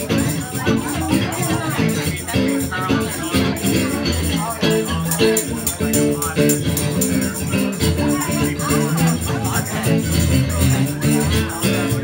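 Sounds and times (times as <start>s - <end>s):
acoustic guitar strumming: 0.0s - 12.0s
hand shaker: 0.0s - 12.0s.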